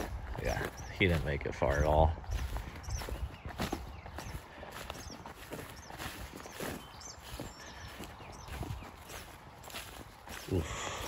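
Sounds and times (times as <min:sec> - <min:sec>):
footsteps through grass: 0:00.0 - 0:11.0.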